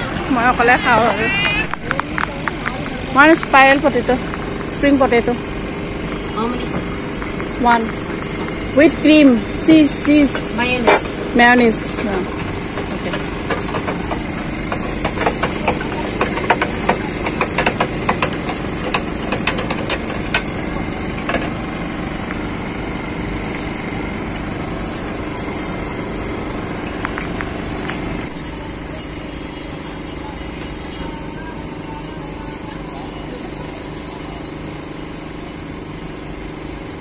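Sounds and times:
steady hum: 0:00.0 - 0:37.0.

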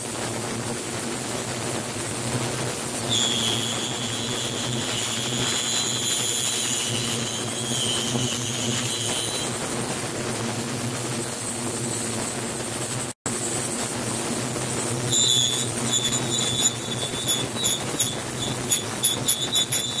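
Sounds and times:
electric train rumbling: 0:01.2 - 0:12.1, 0:14.2 - 0:20.0
high-pitched squeal: 0:02.4 - 0:11.4, 0:14.7 - 0:20.0.

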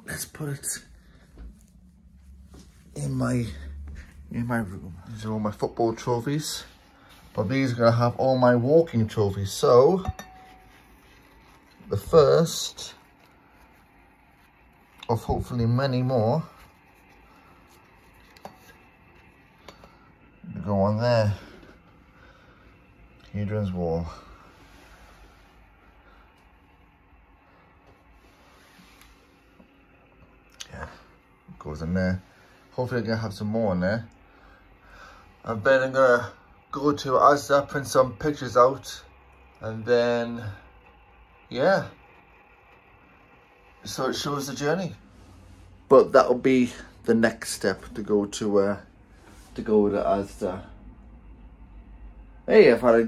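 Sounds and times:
faint low hum: 0:00.0 - 0:53.0.

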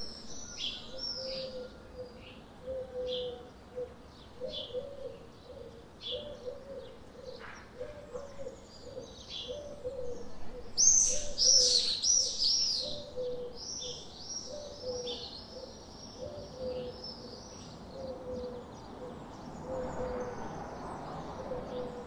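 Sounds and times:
small birds chirping: 0:00.0 - 0:22.0
pigeon cooing: 0:00.8 - 0:17.3, 0:17.9 - 0:20.5, 0:21.4 - 0:22.0.

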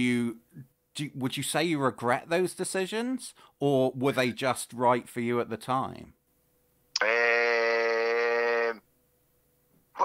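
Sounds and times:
man hesitating errr: 0:07.0 - 0:08.8.

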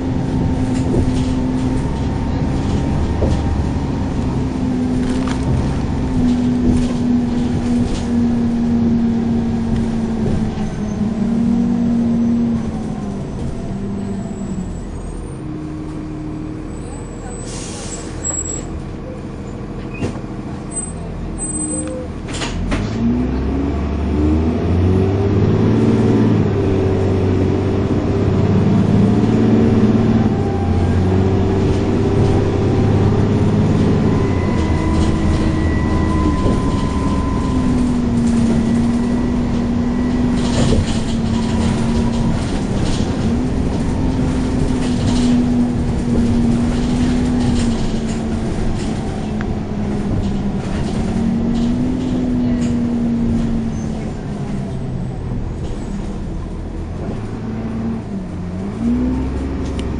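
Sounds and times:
bus diesel engine running: 0:00.0 - 0:59.9
air brake hiss: 0:17.4 - 0:18.2.

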